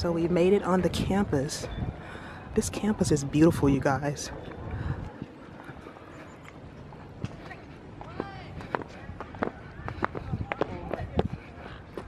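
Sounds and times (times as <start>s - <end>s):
footsteps on stone paving: 4.2s - 12.0s.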